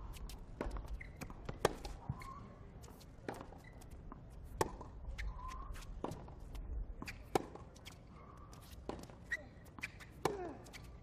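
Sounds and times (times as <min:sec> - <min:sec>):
tennis racket hitting ball: 0:00.2 - 0:02.3, 0:04.5 - 0:07.6.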